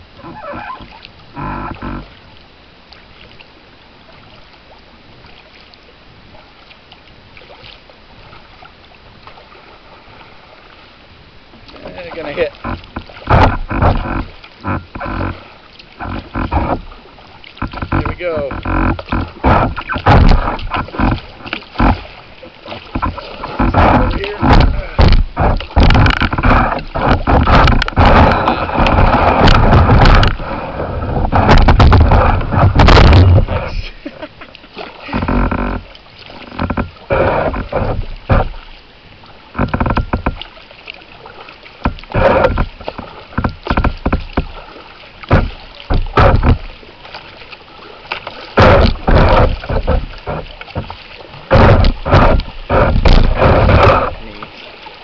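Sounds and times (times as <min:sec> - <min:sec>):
paddle splashing water: 0:00.0 - 0:55.0.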